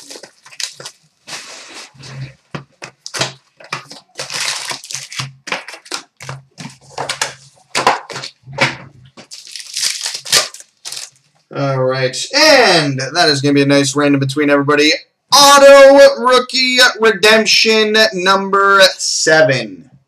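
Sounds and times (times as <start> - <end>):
card pack wrapper crinkling: 0.0 - 2.1, 2.8 - 8.4, 9.2 - 11.3
cards being handled: 0.0 - 8.4.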